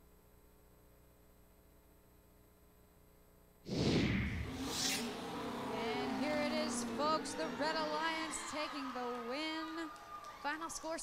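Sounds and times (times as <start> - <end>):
falling whoosh: 3.7 - 5.9
rising whoosh: 3.7 - 5.9.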